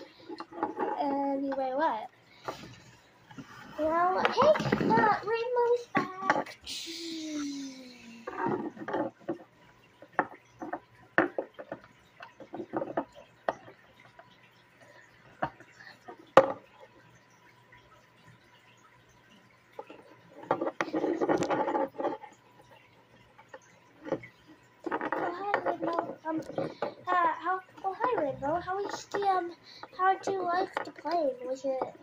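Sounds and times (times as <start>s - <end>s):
child making wordless sounds: 1.0s - 2.1s, 3.8s - 8.4s, 25.2s - 32.0s.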